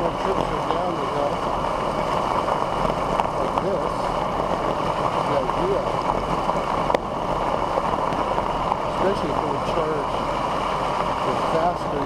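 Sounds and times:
bike rolling over gravel: 0.0 - 12.0.

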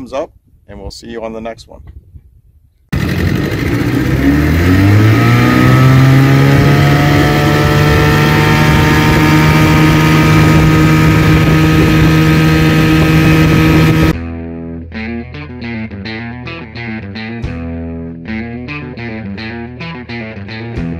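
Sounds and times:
outboard motor running: 2.9 - 14.2.

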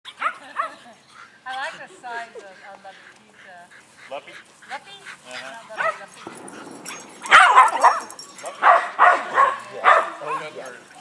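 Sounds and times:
dog barking high-pitched: 6.8 - 10.6.

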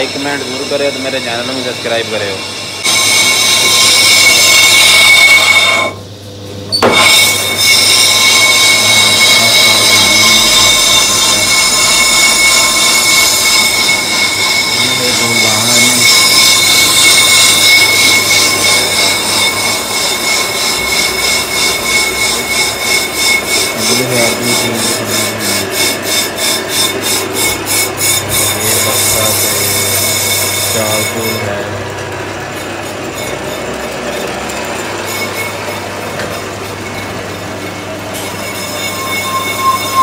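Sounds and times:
lathe tool screeching on disc: 0.0 - 6.0, 6.6 - 40.0.

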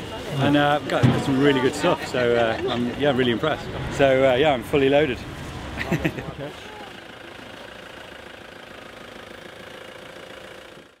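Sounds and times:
street background noise: 0.0 - 11.0
vehicle engine idling: 0.0 - 11.0.

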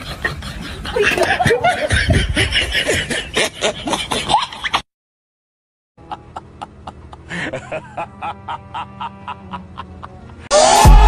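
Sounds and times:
person laughing: 0.0 - 4.8, 6.0 - 10.5.

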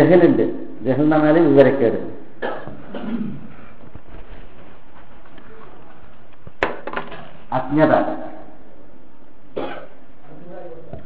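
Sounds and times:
steady background hiss: 0.0 - 11.0
person coughing: 2.4 - 3.5, 9.6 - 10.0.

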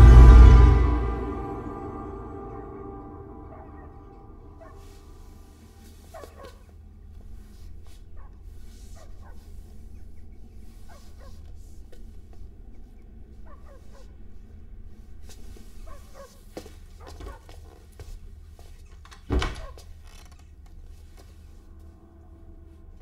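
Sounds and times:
low steady hum: 0.0 - 16.8, 20.6 - 23.0.

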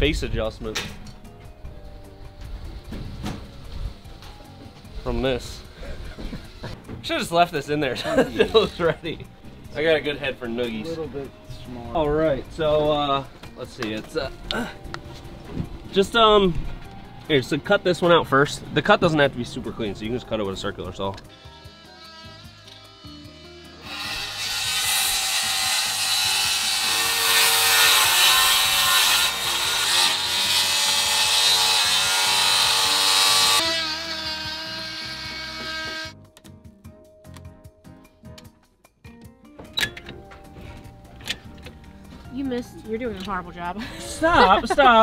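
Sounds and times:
circular saw cutting board: 21.3 - 36.2.

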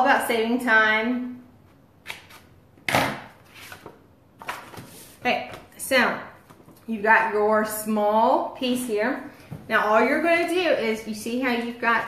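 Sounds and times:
paper rustling: 3.4 - 5.6.

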